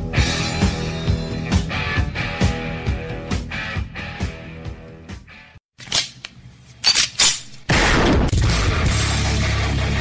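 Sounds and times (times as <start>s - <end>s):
loud hard rock music: 0.0s - 5.6s, 8.2s - 10.0s.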